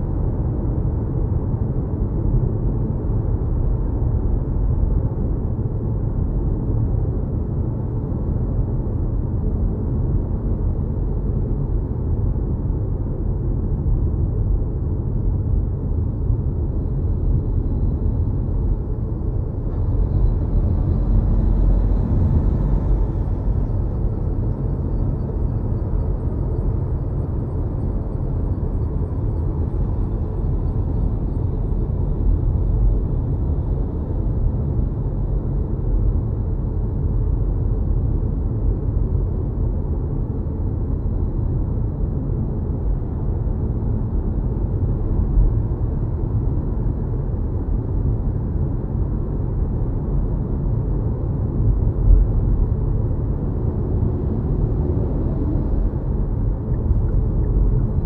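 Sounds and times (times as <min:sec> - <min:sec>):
road and tyre rumble in car: 0:00.0 - 0:58.0.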